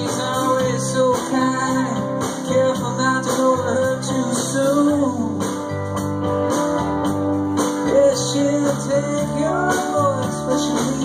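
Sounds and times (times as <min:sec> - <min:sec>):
live band playing country-rock: 0:00.0 - 0:11.0.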